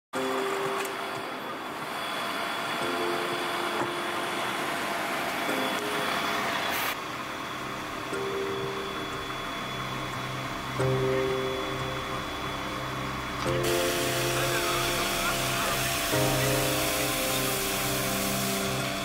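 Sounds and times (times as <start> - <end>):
diesel engine running: 1.7 - 19.0.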